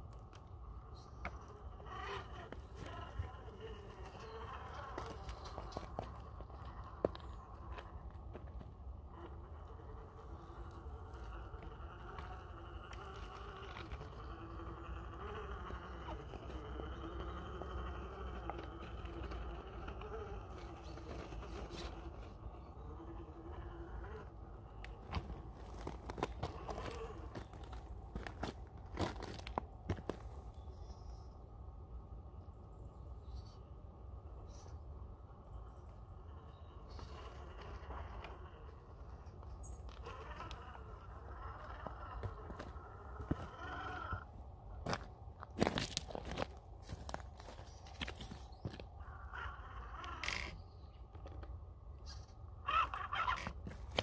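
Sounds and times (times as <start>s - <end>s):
electric motor whining: 1.3s - 8.0s, 9.0s - 28.5s, 35.8s - 44.3s.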